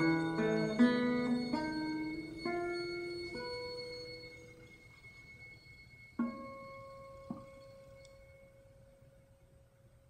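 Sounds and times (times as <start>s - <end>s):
plucked classical guitar notes: 0.0s - 8.6s.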